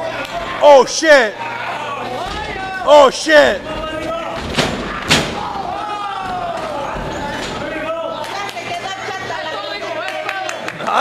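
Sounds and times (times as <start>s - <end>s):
spectators shouting: 0.0s - 8.2s
wrestlers slamming onto ring: 4.3s - 7.7s.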